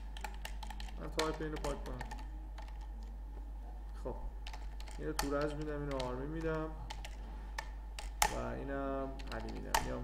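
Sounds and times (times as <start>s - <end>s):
computer keyboard keystrokes: 0.0s - 3.1s, 4.4s - 8.4s, 9.2s - 10.0s
steady low hum: 0.0s - 10.0s.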